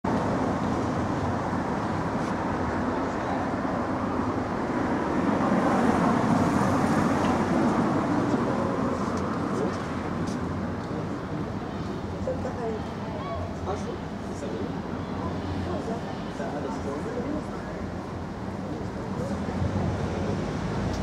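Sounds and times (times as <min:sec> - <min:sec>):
traffic rumble: 0:00.0 - 0:21.0.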